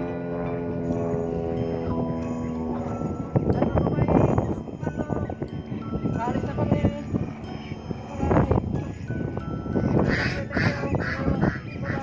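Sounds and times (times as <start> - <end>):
ducks quacking: 10.0 - 12.0.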